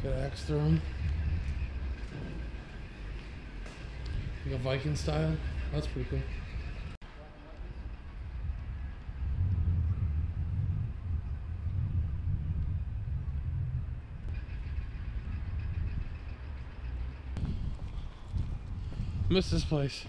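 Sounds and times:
low street rumble: 0.0 - 20.0.

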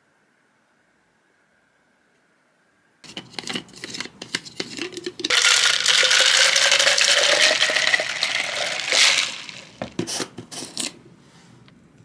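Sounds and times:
ice rattling in plastic: 3.1 - 10.0
liquid pouring into a bottle: 5.3 - 9.8.

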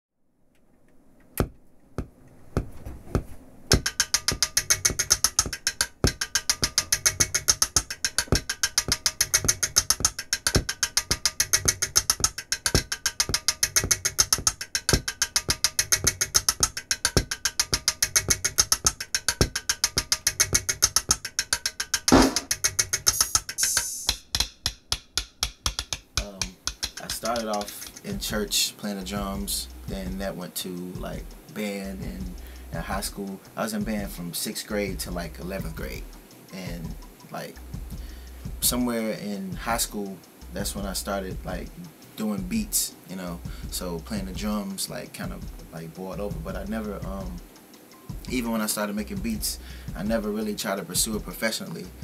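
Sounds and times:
drum beat music: 1.4 - 52.0.

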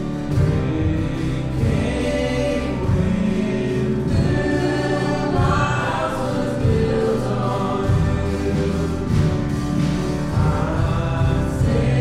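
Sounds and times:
grand piano: 0.0 - 12.0
group of voices singing: 0.0 - 12.0
man singing: 0.0 - 12.0.

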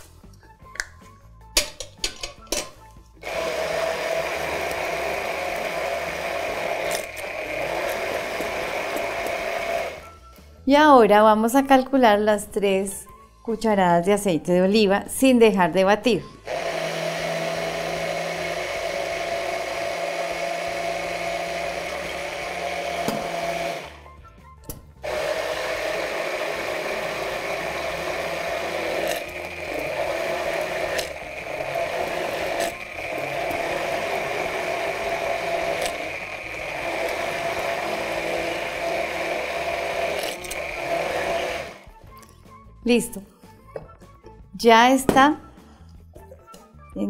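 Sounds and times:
immersion blender running: 3.2 - 10.1, 16.4 - 24.0, 25.0 - 41.9.

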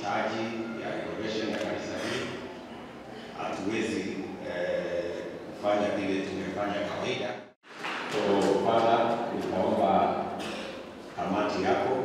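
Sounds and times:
man's amplified voice: 0.0 - 2.5, 3.2 - 7.5, 8.1 - 12.0.

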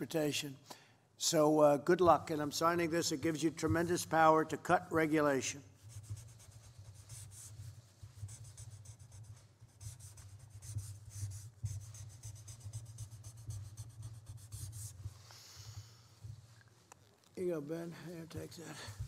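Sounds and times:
pen scratching on paper: 5.8 - 15.2.

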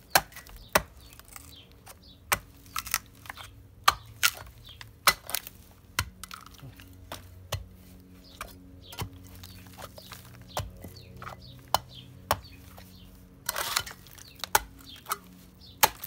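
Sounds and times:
hatchet chopping rotten wood: 0.0 - 1.6, 2.2 - 12.7, 13.5 - 16.0.

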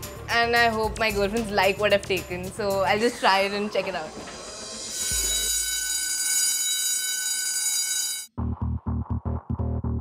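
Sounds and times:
alarm clock bell ringing: 4.9 - 8.3.

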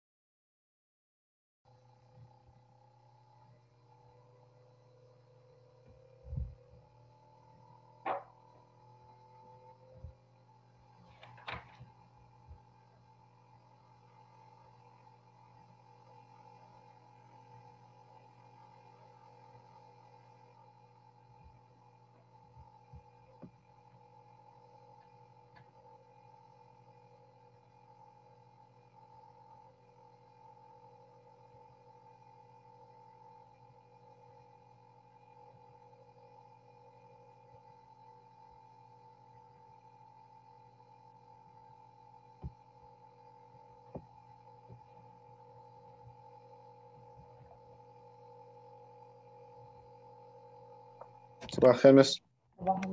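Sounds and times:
faint electronic hum: 1.7 - 52.9.

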